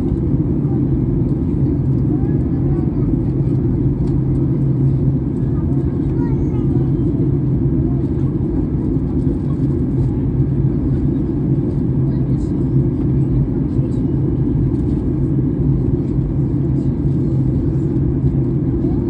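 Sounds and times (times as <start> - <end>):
airliner cabin rumble: 0.0 - 19.0.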